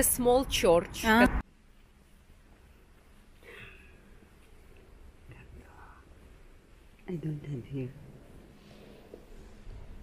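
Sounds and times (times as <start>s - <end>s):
person whispering: 5.3s - 6.2s.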